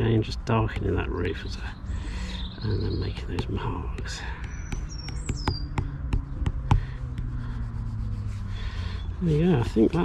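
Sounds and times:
high bird chirp: 1.4s - 6.4s.

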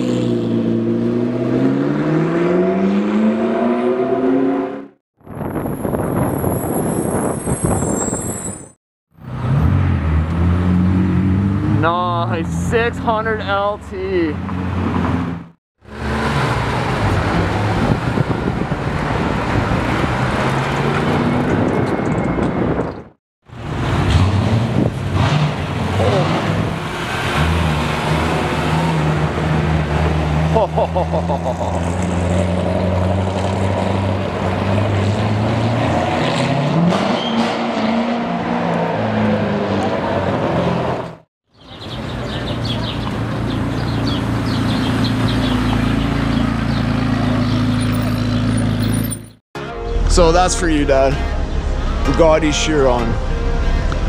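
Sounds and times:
engine revving: 0.0s - 5.0s, 23.6s - 41.0s
car engines running: 41.7s - 49.3s.

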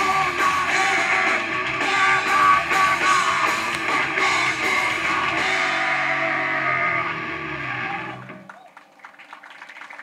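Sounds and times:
heavy metal band chord: 0.0s - 8.4s
crowd shouts: 5.3s - 8.7s.

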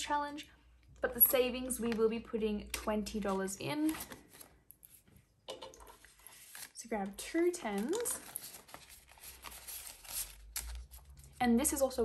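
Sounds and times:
plastic binder being handled: 3.0s - 11.4s
banknotes rustling: 5.9s - 11.4s.

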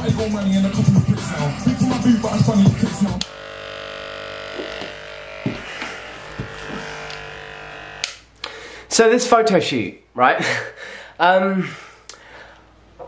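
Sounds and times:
rapping over a beat on speakers: 0.0s - 3.2s
electric hair trimmer buzzing: 0.3s - 8.3s.

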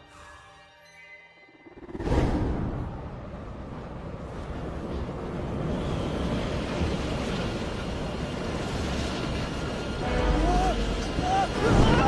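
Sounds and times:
music: 0.0s - 2.0s, 10.0s - 12.0s
rushing wind: 1.7s - 12.0s.

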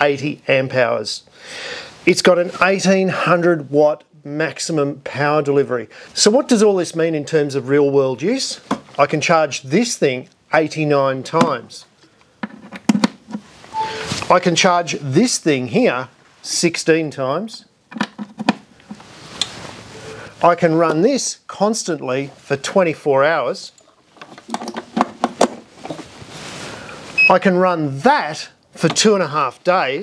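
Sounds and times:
short electronic beep: 13.7s - 14.1s, 27.2s - 27.4s.

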